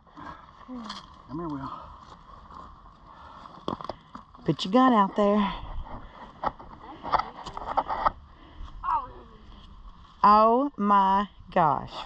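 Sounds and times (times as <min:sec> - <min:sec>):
outdoor background hiss: 0:00.0 - 0:12.0.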